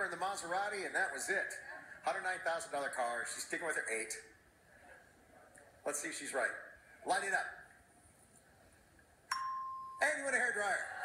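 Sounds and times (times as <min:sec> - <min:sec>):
game-show bell ding: 0:09.3 - 0:10.2.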